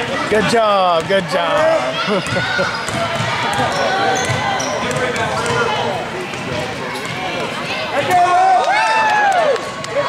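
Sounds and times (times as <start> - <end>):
voices chattering and calling out: 0.0 - 10.0
basketball bouncing on wooden floor: 2.2 - 5.7.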